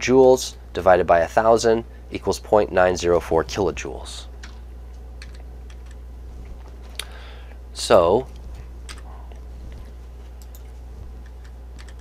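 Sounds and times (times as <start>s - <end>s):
low electrical hum: 0.0s - 12.0s.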